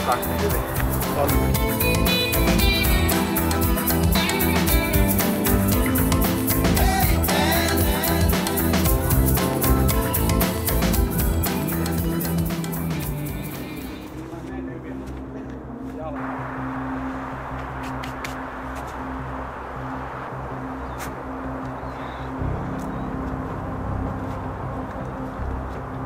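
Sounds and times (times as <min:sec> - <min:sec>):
background music: 0:00.0 - 0:26.0
low outdoor hum: 0:13.2 - 0:26.0.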